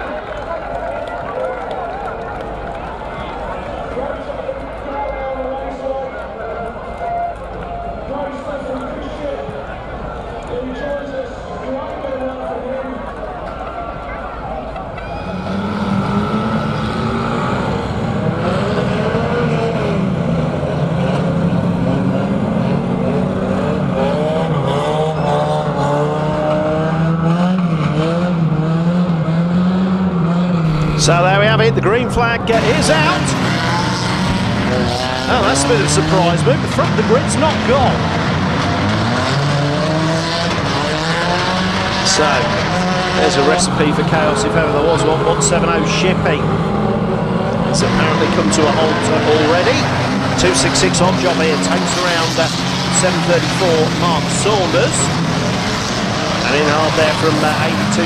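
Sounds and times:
murmur of voices: 0.0 - 58.0
racing van engines running: 0.0 - 58.0
loud engine revving close: 14.7 - 58.0.

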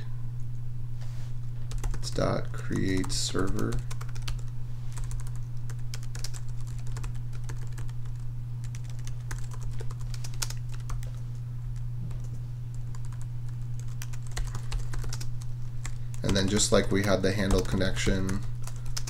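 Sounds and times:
steady low hum: 0.0 - 19.0
computer keyboard typing: 1.7 - 11.2, 12.9 - 19.0.

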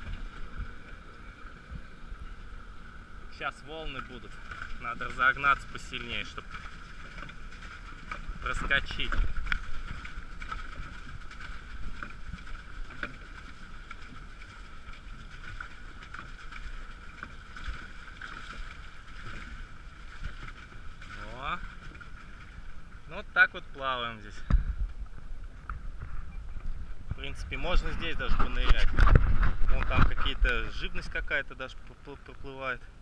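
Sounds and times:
water washing against hulls: 0.0 - 33.0.

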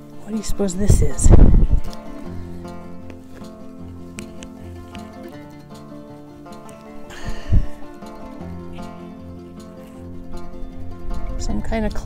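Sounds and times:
instrumental music with held notes: 0.0 - 12.0.

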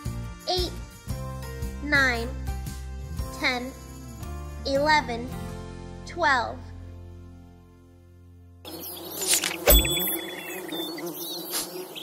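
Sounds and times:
insect buzz: 8.7 - 12.0
small birds chirping: 8.7 - 12.0.

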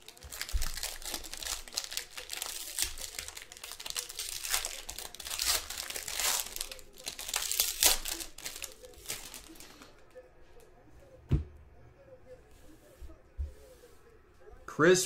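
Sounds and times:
foil wrapper crinkling and tearing: 0.0 - 10.0.

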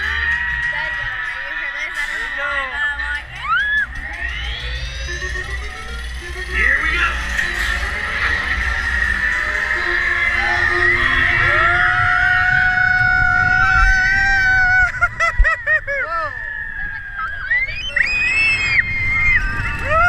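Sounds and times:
riders screaming and whooping: 0.0 - 5.6, 7.8 - 20.0
low rumble of roller coaster train: 0.0 - 20.0.

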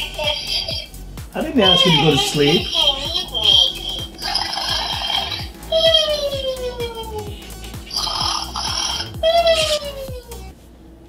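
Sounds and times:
buzzy synthesized tone: 0.0 - 10.5
steady low beat: 0.0 - 10.6.

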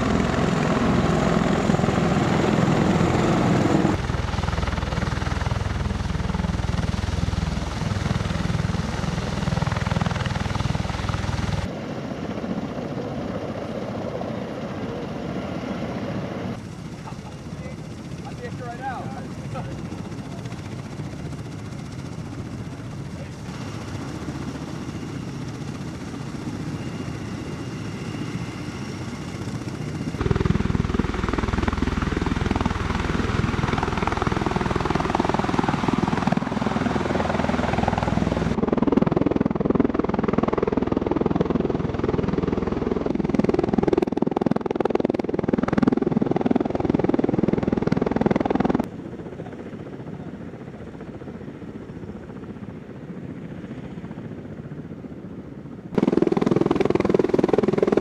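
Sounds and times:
tiltrotor aircraft rotor and engine noise: 0.0 - 58.0.

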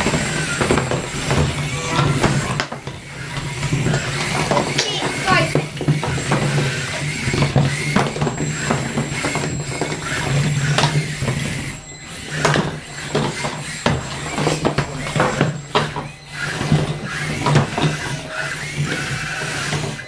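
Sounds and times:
robot weapon humming: 1.0 - 12.8.

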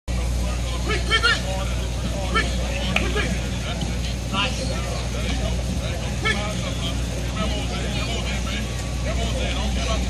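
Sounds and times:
man calling out: 0.8 - 1.5.

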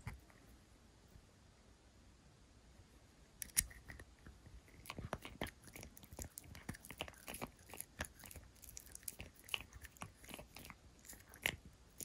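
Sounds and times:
puppy gnawing on a chew: 0.0 - 0.5, 3.4 - 12.0.

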